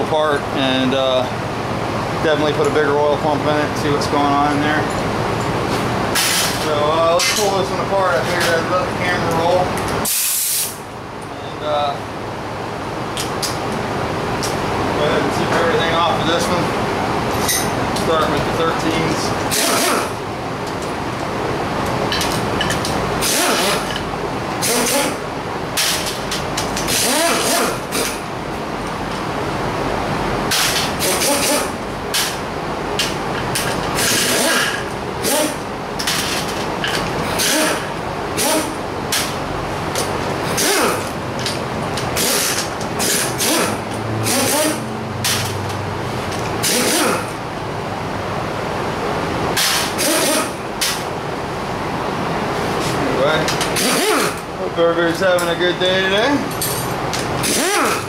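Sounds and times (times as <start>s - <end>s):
pneumatic impact wrench bursts: 6.2s - 6.6s, 10.0s - 10.8s, 19.5s - 20.2s, 23.2s - 24.0s, 24.6s - 25.2s, 25.8s - 26.2s, 26.8s - 28.2s, 30.5s - 32.4s, 33.9s - 35.6s, 37.2s - 39.4s, 40.4s - 41.1s, 42.1s - 45.5s, 46.6s - 47.4s, 49.5s - 51.0s, 53.6s - 54.5s, 57.4s - 58.0s
air hiss: 10.0s - 10.8s.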